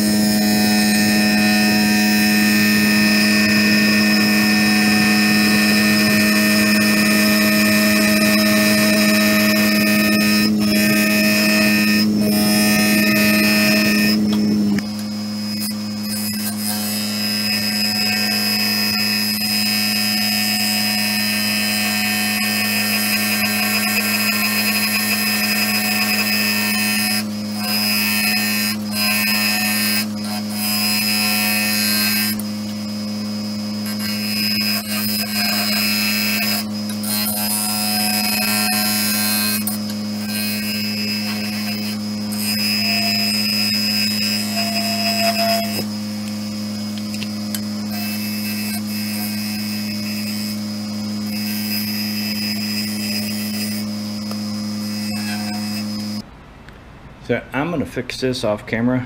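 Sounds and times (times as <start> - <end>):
lathe motor humming: 0.0 - 56.2.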